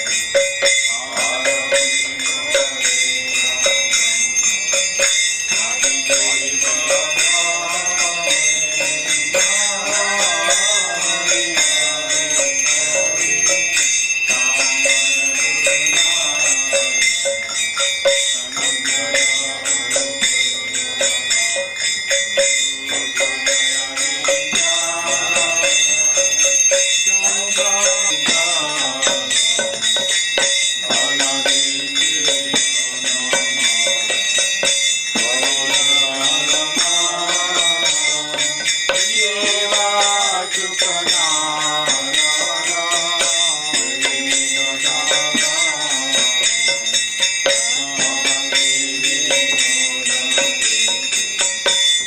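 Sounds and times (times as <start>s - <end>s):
devotional singing with instruments: 0.0s - 52.0s
hand cymbals ringing: 0.0s - 52.0s.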